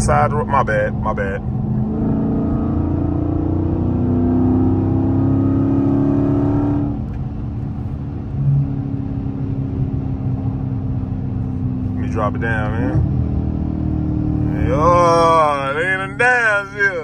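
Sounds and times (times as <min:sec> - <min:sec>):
car engine accelerating: 0:00.0 - 0:17.0.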